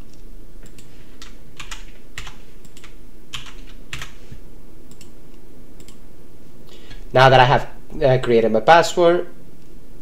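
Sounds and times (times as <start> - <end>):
computer keyboard typing: 0.7 - 4.2.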